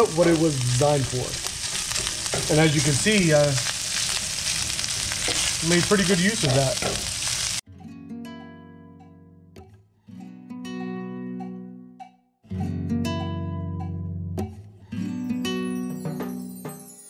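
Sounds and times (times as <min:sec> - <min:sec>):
plucked strings background music: 0:07.6 - 0:17.0.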